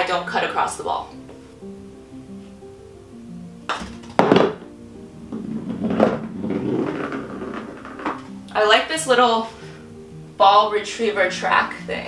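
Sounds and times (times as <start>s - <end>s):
soft plucked background music: 0.0s - 12.0s
golf ball rolling on track: 3.8s - 8.4s
putter striking golf ball: 5.2s - 8.3s.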